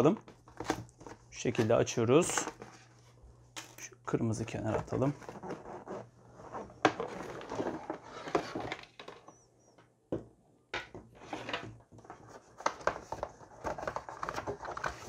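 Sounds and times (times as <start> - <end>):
cardboard box rustling and scraping: 4.6 - 8.8.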